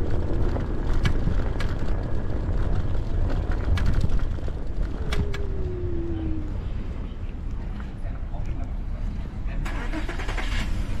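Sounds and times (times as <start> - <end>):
wind rumbling on microphone: 0.0 - 9.4.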